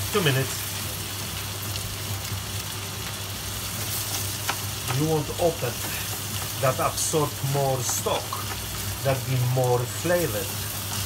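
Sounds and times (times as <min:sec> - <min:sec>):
food sizzling in oil: 0:00.0 - 0:11.0.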